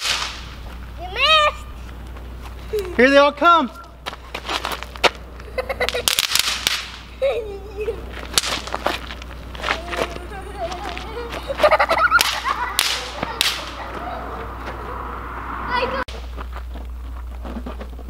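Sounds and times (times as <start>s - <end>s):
people laughing: 5.4s - 6.2s, 7.1s - 8.2s, 10.2s - 15.0s
people shouting: 12.6s - 16.0s.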